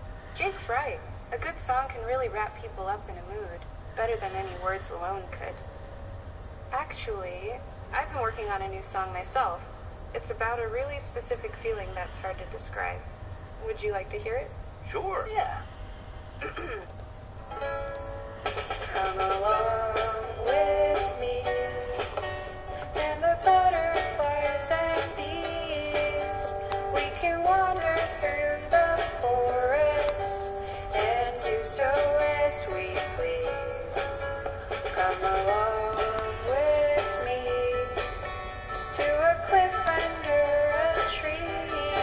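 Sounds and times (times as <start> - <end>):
light instrumental melody over beats: 17.4 - 42.0.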